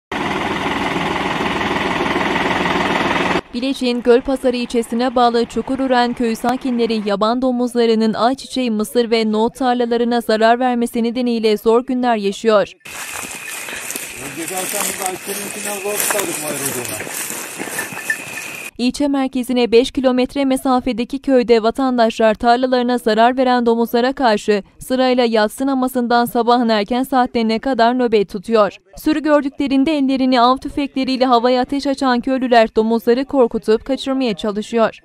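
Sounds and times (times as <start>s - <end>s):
tractor diesel engine running: 0.1s - 7.4s, 12.9s - 18.7s
distant men talking: 12.9s - 17.6s
steady hiss: 12.9s - 18.7s.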